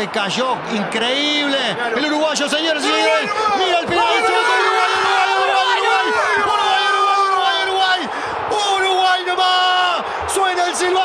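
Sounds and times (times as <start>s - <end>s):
stadium crowd: 0.0s - 11.0s
commentator's drawn-out shout: 0.8s - 11.0s.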